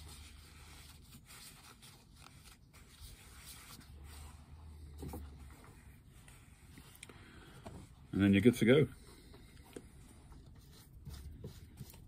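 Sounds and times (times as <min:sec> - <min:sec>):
paper tissue rustling: 0:00.0 - 0:04.8.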